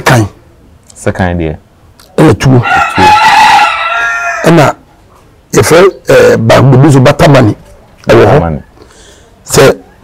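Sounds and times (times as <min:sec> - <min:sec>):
man speaking: 0:00.0 - 0:03.2, 0:05.5 - 0:08.8, 0:09.4 - 0:10.0
rooster crowing: 0:02.6 - 0:04.8.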